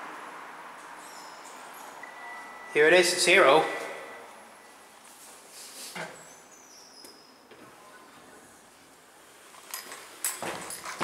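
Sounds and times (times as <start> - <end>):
faint high whine: 2.0 - 5.1
clicks and rustles: 9.6 - 11.0.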